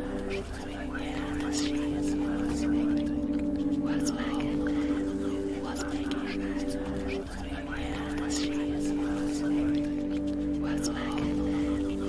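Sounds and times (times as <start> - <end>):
person whispering: 0.0 - 12.0.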